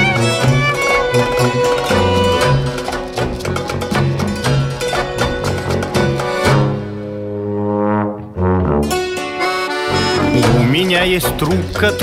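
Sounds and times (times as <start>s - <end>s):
folk band playing instrumental: 0.0s - 7.2s, 8.2s - 12.0s.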